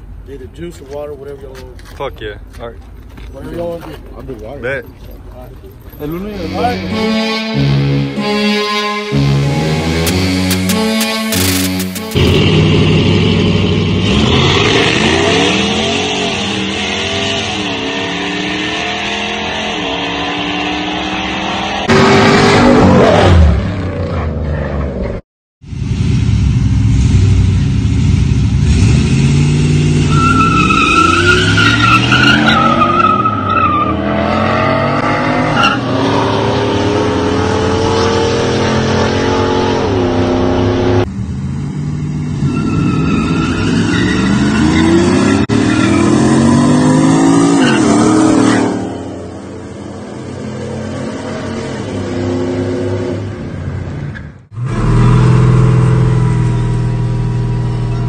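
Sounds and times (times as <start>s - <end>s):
truck engines revving: 3.4s - 58.0s.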